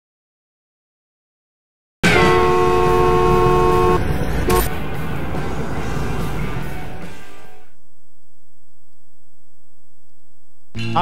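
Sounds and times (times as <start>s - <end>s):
two-tone car horn honking: 2.0s - 5.4s
car driving rumble: 2.0s - 10.8s.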